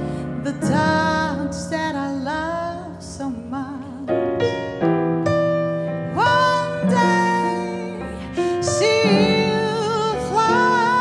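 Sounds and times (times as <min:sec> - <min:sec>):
acoustic piano: 0:00.0 - 0:11.0
woman singing: 0:00.1 - 0:04.4, 0:06.1 - 0:11.0.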